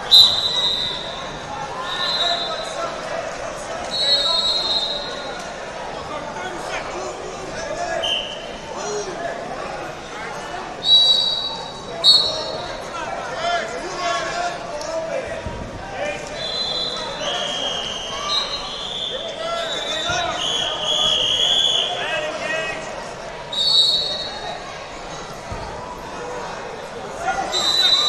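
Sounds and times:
referee whistles blowing: 0.0s - 2.8s, 3.9s - 5.3s, 8.0s - 8.5s, 10.8s - 12.7s, 16.4s - 22.1s, 23.5s - 24.5s, 27.4s - 28.0s
crowd chatter in hall: 0.0s - 28.0s.

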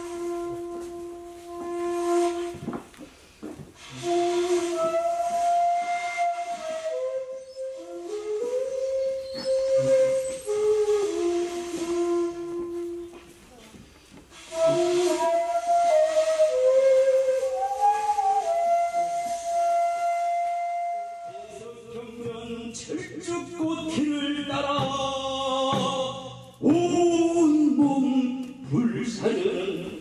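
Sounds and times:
bamboo flute breathy note: 0.0s - 3.2s, 3.8s - 13.6s, 14.3s - 21.7s.

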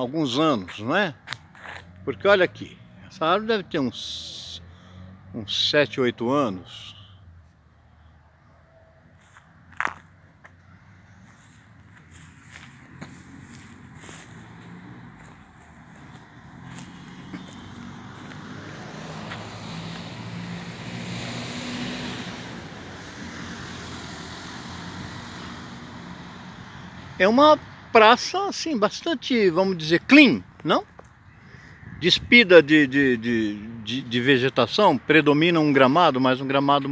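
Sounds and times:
vehicle passing by: 0.4s - 28.3s.

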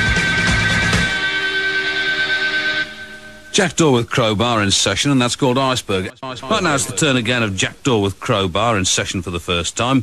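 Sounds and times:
electric guitar chord ringing out: 0.0s - 3.6s
high steady tone: 0.0s - 4.4s, 6.1s - 7.5s.

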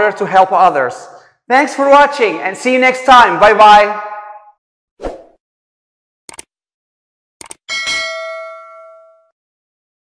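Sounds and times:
bright bell ding: 7.7s - 9.4s.

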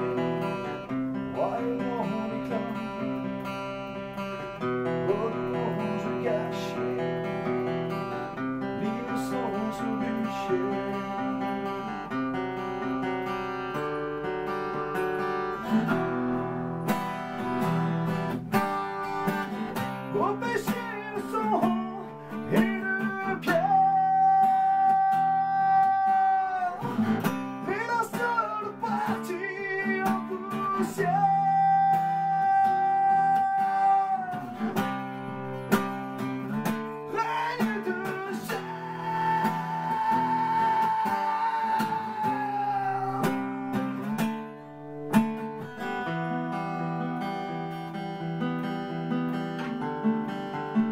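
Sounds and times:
man singing: 0.0s - 3.5s, 4.5s - 12.2s, 18.6s - 44.5s
strummed acoustic guitar: 0.0s - 50.9s.

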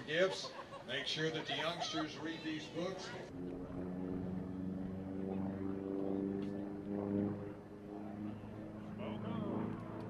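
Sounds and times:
propeller plane engine droning overhead: 0.0s - 10.0s.

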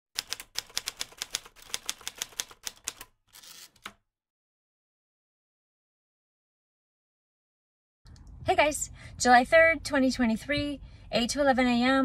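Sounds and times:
rapid keyboard typing: 0.2s - 4.0s.

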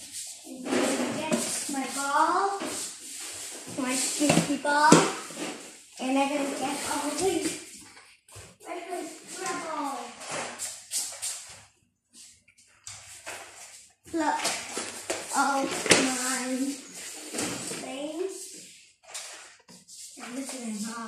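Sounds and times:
child talking: 0.5s - 2.8s, 3.7s - 5.3s, 6.0s - 7.7s, 8.6s - 10.3s, 14.1s - 14.7s, 15.3s - 17.0s, 17.6s - 18.5s, 20.2s - 21.0s.

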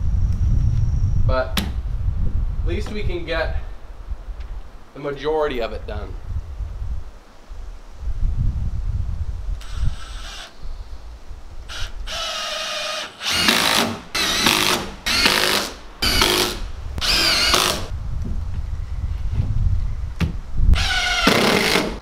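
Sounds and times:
wind rumble on microphone: 0.0s - 12.3s, 16.0s - 21.9s
cordless drill driving screws: 9.6s - 10.5s, 11.7s - 17.9s, 20.8s - 22.0s.

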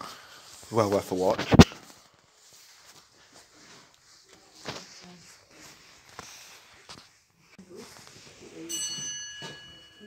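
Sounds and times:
small bell ringing: 8.7s - 10.0s.

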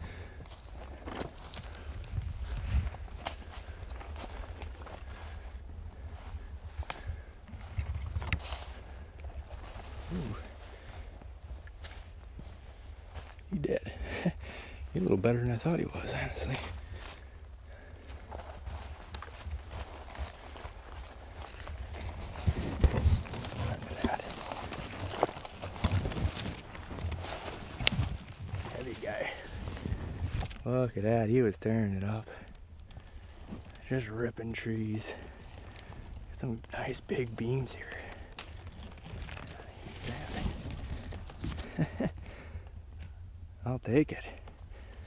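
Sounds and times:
rustling in dry leaves: 0.0s - 30.8s, 32.8s - 42.6s
camera handling rumble: 6.9s - 10.2s, 18.6s - 28.8s, 29.4s - 30.7s, 38.2s - 43.1s
footsteps crunching through leaves: 16.3s - 30.5s, 37.1s - 41.8s.

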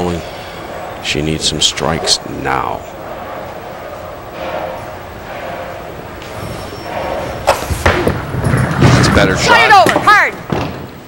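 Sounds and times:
bowling hall background: 0.0s - 11.0s
bowling ball rolling rumble: 1.7s - 11.0s.

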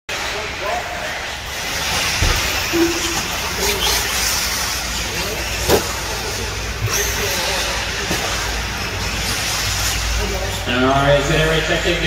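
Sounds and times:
rc truck motors and tyres humming: 0.1s - 12.0s.

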